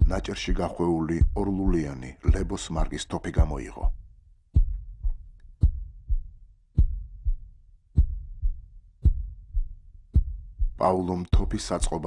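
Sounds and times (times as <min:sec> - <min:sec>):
heartbeat thumps: 0:00.0 - 0:12.0.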